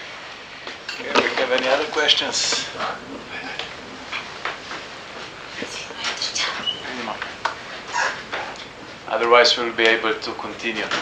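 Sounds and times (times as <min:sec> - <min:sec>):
faint voices: 0:01.0 - 0:04.4.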